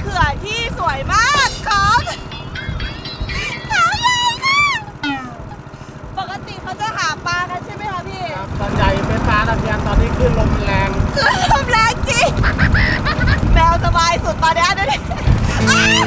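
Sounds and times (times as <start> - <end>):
boat engine rumble: 0.0 - 16.0
person singing: 5.0 - 5.5.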